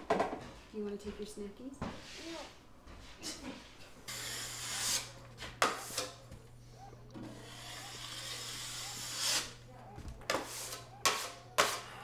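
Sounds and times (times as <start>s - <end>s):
hand tool scraping drywall: 7.4s - 9.6s, 10.3s - 12.0s.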